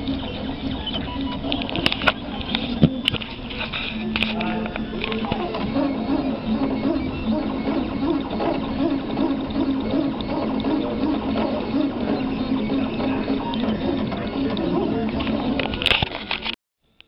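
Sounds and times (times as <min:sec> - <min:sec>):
stepper motors whining: 0:00.0 - 0:16.6.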